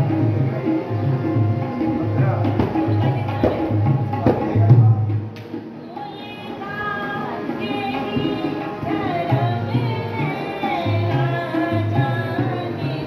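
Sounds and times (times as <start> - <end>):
hand drum rhythm: 0.0 - 5.7.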